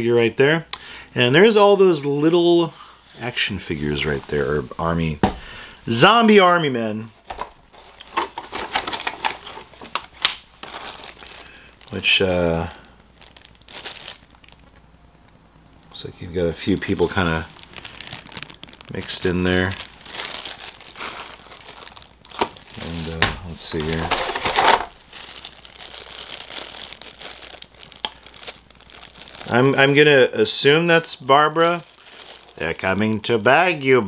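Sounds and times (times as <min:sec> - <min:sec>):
packaging crinkling: 0:07.2 - 0:14.9, 0:15.8 - 0:33.6.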